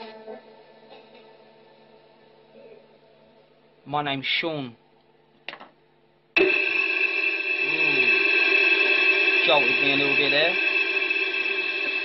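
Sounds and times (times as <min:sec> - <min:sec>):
loud electronic drone: 0:06.4 - 0:12.0.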